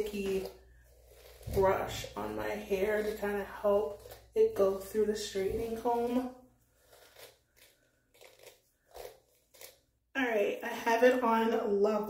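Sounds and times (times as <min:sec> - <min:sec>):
brush pulled through hair: 0:00.0 - 0:09.8.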